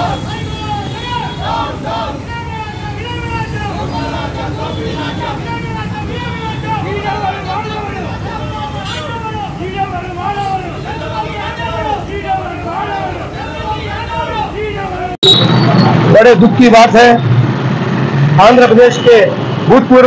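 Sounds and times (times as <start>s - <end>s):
road traffic rumble: 0.0s - 20.0s.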